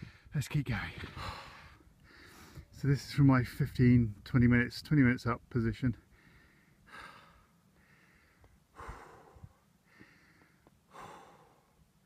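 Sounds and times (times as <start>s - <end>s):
man breathing heavily: 0.0s - 0.3s, 1.0s - 2.7s, 6.0s - 12.0s.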